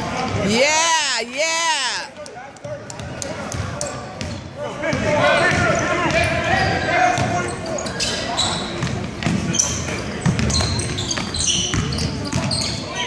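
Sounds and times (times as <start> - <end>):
basketball bouncing: 2.6 - 6.3, 8.8 - 9.5, 10.2 - 12.6.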